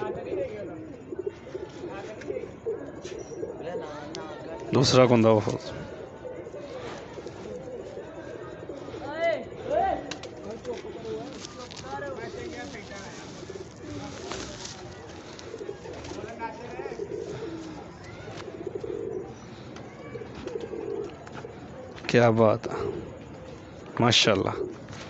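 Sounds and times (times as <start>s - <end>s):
pigeons cooing: 0.0s - 22.0s, 22.6s - 25.0s
faint voices: 0.0s - 25.0s.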